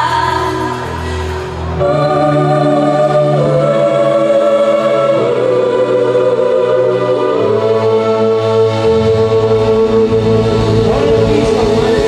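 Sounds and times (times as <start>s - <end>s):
band sustained backing: 0.0s - 12.0s.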